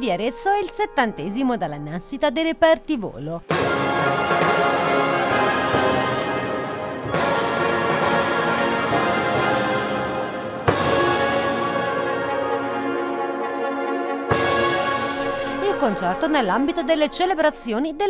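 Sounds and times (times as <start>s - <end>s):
wind band playing sustained chords: 3.5s - 16.5s.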